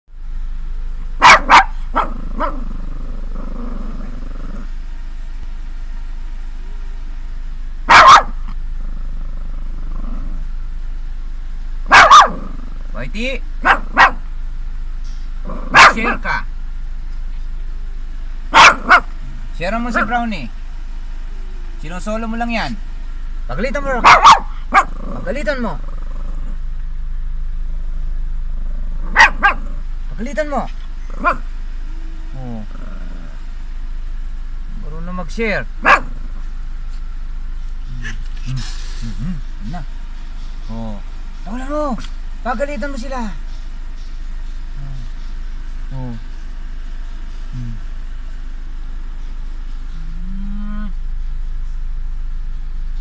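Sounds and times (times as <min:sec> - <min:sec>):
small dog barking: 0:01.2 - 0:02.7, 0:07.8 - 0:08.6, 0:11.8 - 0:12.5, 0:13.6 - 0:14.3, 0:15.7 - 0:16.3, 0:18.5 - 0:19.2, 0:24.0 - 0:25.0, 0:29.0 - 0:29.8, 0:31.2 - 0:31.5, 0:35.8 - 0:36.2
dog growling low: 0:02.0 - 0:04.8, 0:08.8 - 0:10.5, 0:15.4 - 0:15.8, 0:24.8 - 0:26.7, 0:28.3 - 0:29.9, 0:32.3 - 0:33.4, 0:37.9 - 0:39.8, 0:50.0 - 0:51.1.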